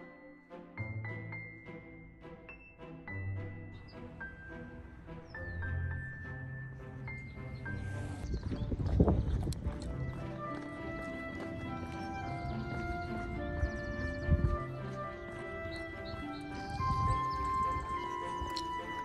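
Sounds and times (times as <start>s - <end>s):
background music of held notes: 0.0s - 19.0s.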